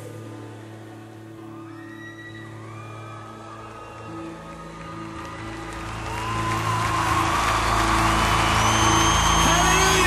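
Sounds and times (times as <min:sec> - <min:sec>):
live band and piano: 0:00.0 - 0:10.0
audience applause and cheering: 0:01.3 - 0:10.0
whoops: 0:01.5 - 0:10.0.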